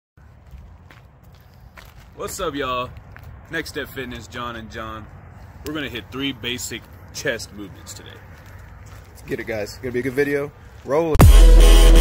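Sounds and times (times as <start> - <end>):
faint footsteps: 0.2 - 11.2.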